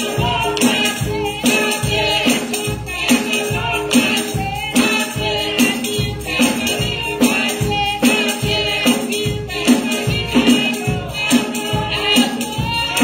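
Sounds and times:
group singing gospel song: 0:00.0 - 0:13.0
tambourine struck and shaken: 0:00.0 - 0:13.0.

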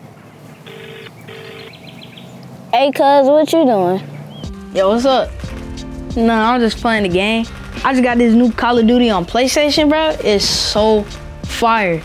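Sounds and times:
telephone ringing tone: 0:00.7 - 0:01.8.

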